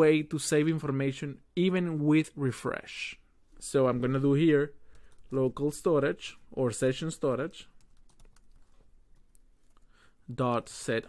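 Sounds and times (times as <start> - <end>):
faint keyboard typing: 4.7 - 10.8.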